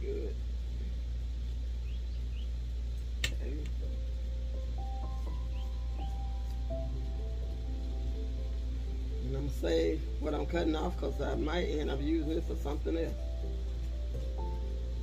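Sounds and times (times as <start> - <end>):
steady low hum: 0.0 - 15.0
sharp click: 3.2 - 3.8
soft music of long held notes: 3.4 - 15.0
faint high chirps: 5.0 - 6.9.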